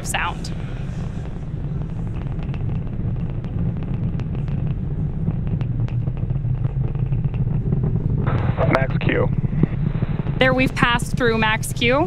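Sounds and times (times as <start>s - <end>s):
rocket engines rumbling and crackling: 0.0s - 12.0s.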